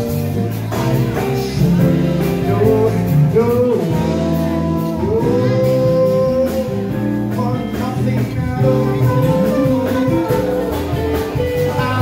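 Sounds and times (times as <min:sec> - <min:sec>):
electric guitar: 0:00.0 - 0:12.0
steady beat: 0:00.0 - 0:12.0
trombone: 0:00.1 - 0:12.0
saxophone: 0:01.1 - 0:07.2, 0:08.4 - 0:12.0.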